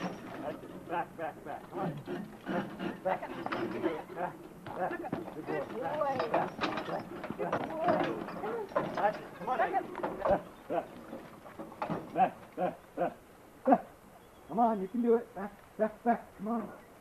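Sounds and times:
indistinct voices talking: 0.0 - 16.9
short calls: 12.1 - 17.0.

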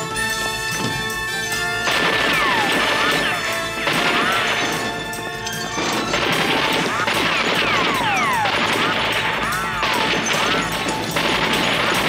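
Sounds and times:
dramatic background music: 0.0 - 12.0
rapid rifle shots: 1.8 - 12.0
falling whines: 2.0 - 11.2.

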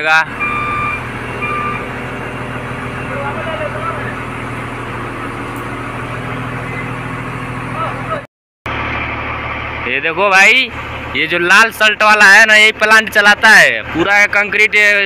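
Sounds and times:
diesel engine idling: 0.0 - 15.0.

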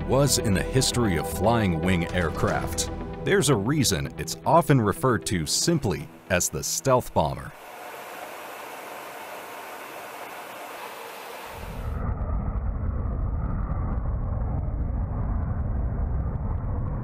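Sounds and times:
jet engines rumbling: 0.0 - 17.0.

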